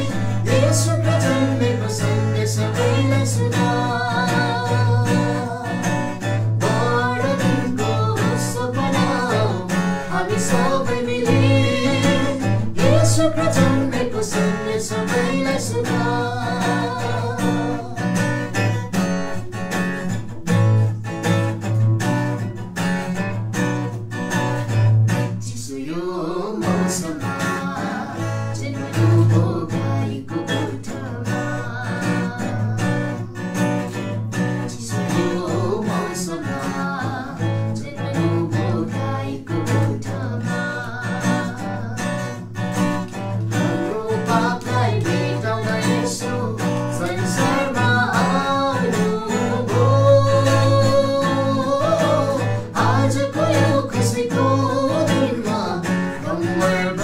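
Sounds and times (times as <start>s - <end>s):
person singing: 0.0s - 20.1s, 25.4s - 57.0s
acoustic guitar strumming chords: 0.0s - 57.0s.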